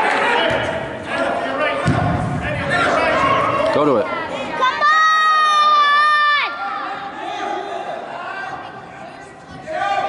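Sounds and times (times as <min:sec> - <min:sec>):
spectators shouting in a hall: 0:02.5 - 0:10.0.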